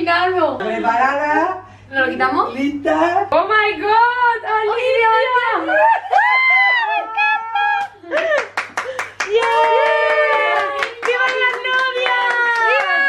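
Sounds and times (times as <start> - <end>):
women's excited squeals: 5.6 - 8.0
quick hand clapping: 7.8 - 13.0.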